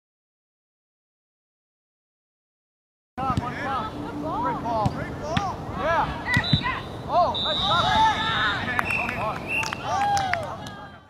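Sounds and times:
players shouting: 3.2s - 11.0s.

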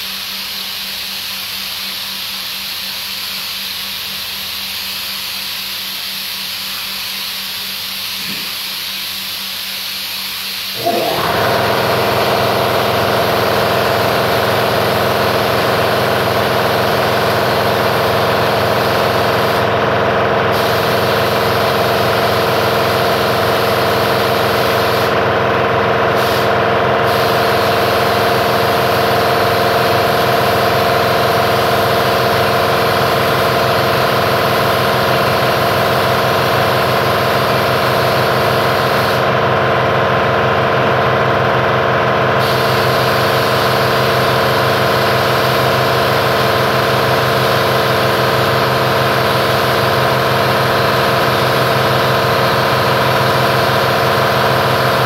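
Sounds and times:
paint spray gun hissing: 0.0s - 25.2s, 26.0s - 39.3s, 42.4s - 55.0s
air compressor running: 0.0s - 55.0s.

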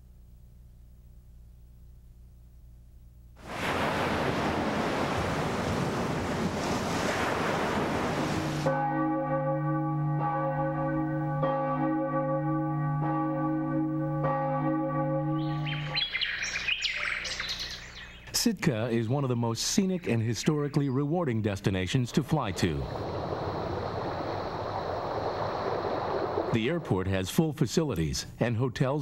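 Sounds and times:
rushing ocean water: 3.4s - 8.8s, 22.5s - 27.1s
church bells ringing: 8.5s - 18.1s
high bird chirps: 15.4s - 18.4s.

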